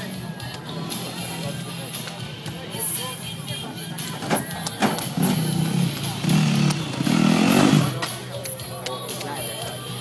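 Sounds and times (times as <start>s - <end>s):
motorcycle engine revving: 4.9s - 8.2s.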